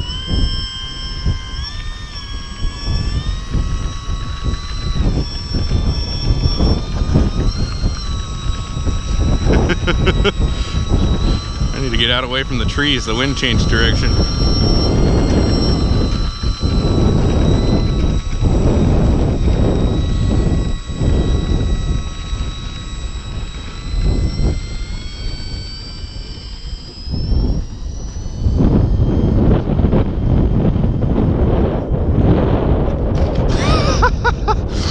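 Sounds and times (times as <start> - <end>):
high whine of small motor: 0.0 - 34.9
wind buffeting microphone: 0.0 - 34.9.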